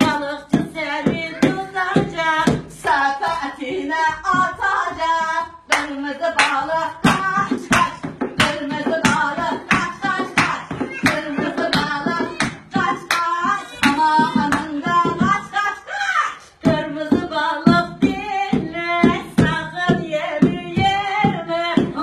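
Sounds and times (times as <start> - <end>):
women singing: 0.0 - 22.0
hands clapping: 5.7 - 14.7.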